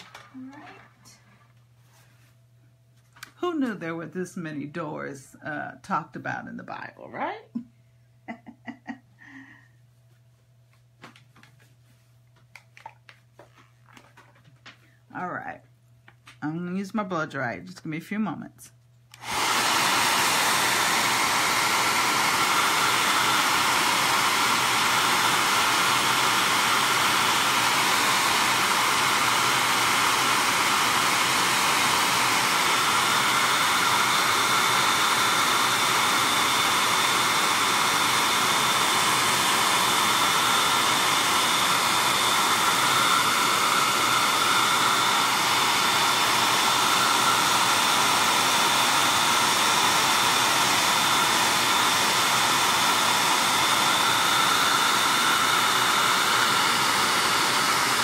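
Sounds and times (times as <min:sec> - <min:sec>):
hair dryer running: 0:00.0 - 0:01.3, 0:08.3 - 0:09.6, 0:19.1 - 0:58.0.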